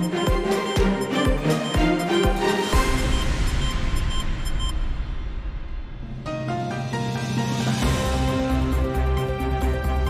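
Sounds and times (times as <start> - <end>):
tv theme music: 0.0 - 10.0.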